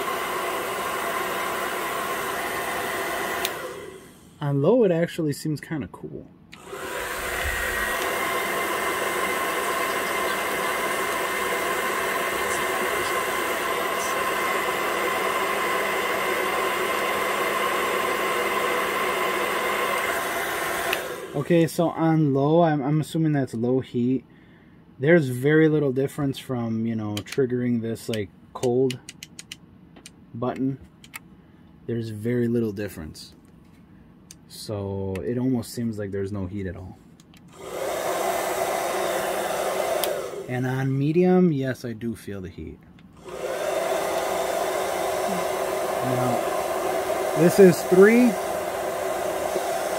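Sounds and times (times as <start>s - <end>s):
hair dryer running: 0.0s - 4.4s, 6.5s - 21.7s, 37.5s - 40.9s, 43.2s - 49.9s.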